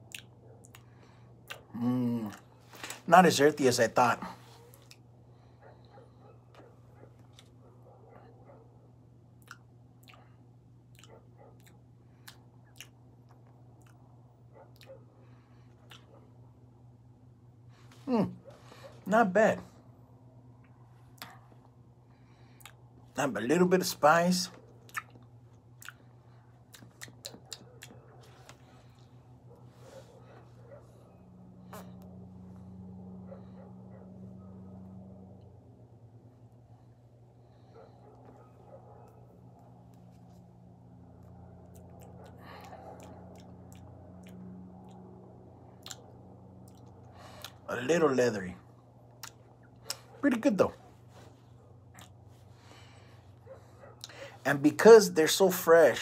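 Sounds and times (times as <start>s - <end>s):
lip smacks and mouth clicks: 0.0s - 3.0s, 4.7s - 5.1s, 9.4s - 16.3s, 20.6s - 21.6s, 22.5s - 22.9s, 24.6s - 29.1s, 41.2s - 47.7s, 49.0s - 50.2s, 51.8s - 52.3s, 54.0s - 54.2s
low hum: 0.0s - 54.3s.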